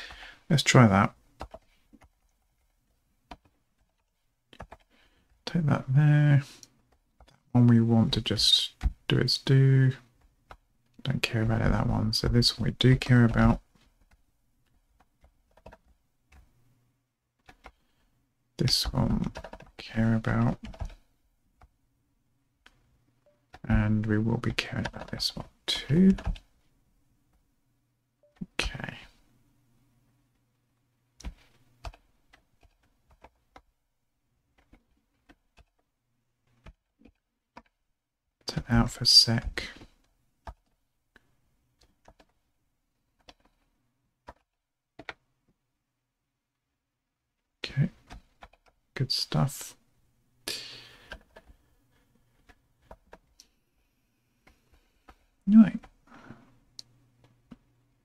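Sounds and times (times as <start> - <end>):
computer keyboard typing: 1.4 - 2.7, 3.3 - 5.0, 12.9 - 16.5, 17.4 - 17.9, 18.7 - 21.0, 23.4 - 26.5, 31.2 - 33.7, 34.6 - 35.8, 40.4 - 40.8, 41.8 - 42.4, 43.2 - 45.2, 47.9 - 48.8, 52.4 - 53.4
keyboard keystrokes: 44.2 - 45.2.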